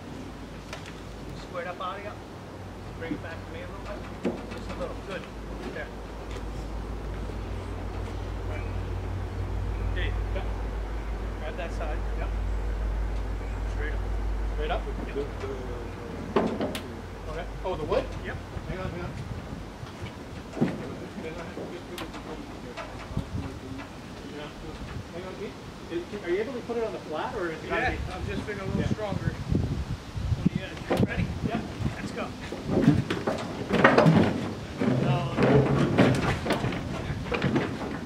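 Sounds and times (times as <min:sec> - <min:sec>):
low vehicle rumble: 0:00.0 - 0:38.0
low voices: 0:02.9 - 0:29.4, 0:34.1 - 0:38.0
knocks of wood and metal: 0:03.1 - 0:06.5, 0:15.0 - 0:25.0, 0:30.8 - 0:38.0.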